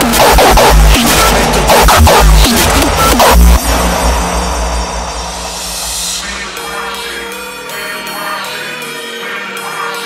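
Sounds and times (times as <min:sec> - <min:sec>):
sustained low bass tone: 0:00.0 - 0:07.6
whooshing noise sweep: 0:00.6 - 0:07.3.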